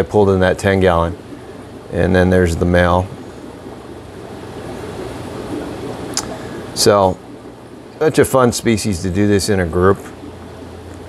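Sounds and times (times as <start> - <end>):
aquarium filters rushing hiss: 0.0 - 11.0.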